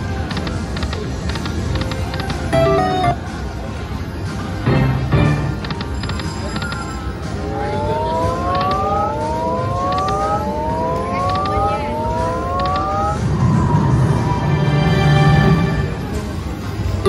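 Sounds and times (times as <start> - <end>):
slot machine rising tones: 2.5 - 3.4, 7.3 - 13.7
electronic game music: 2.5 - 3.5
win chime: 2.6 - 3.3.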